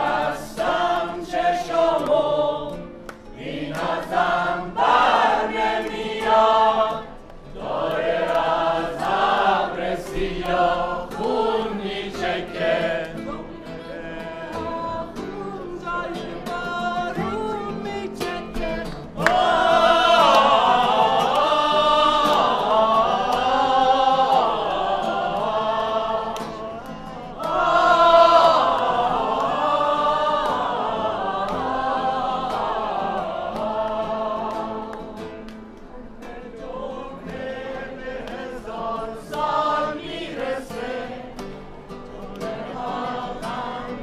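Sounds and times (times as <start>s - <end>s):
mixed choir singing: 0.0s - 44.0s.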